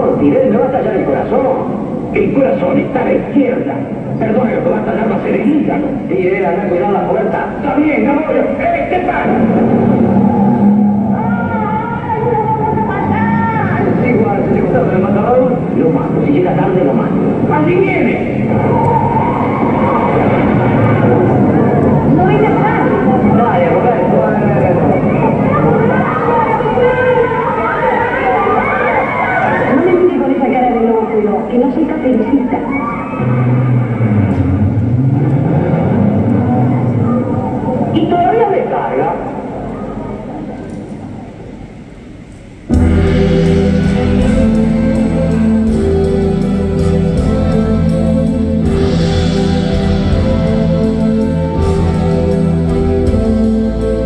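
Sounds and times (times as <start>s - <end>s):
echoing film voices over speakers: 0.0s - 42.0s
film music: 8.8s - 13.0s, 42.7s - 54.0s.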